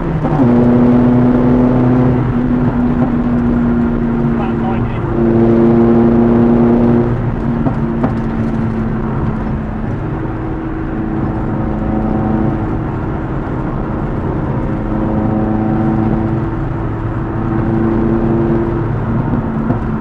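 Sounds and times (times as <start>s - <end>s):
small car engine from inside cabin: 0.0s - 20.0s.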